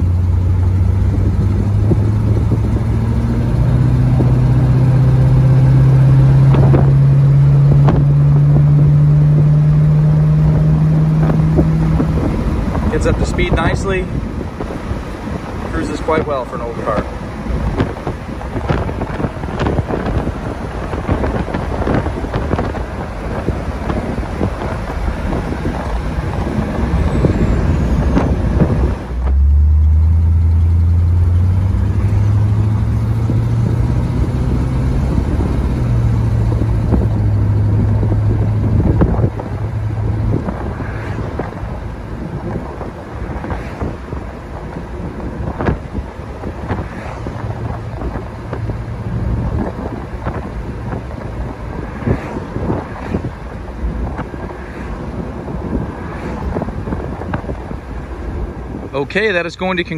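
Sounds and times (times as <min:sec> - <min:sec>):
car engine accelerating: 0:00.0 - 0:59.9
wind and road noise: 0:00.0 - 0:59.9.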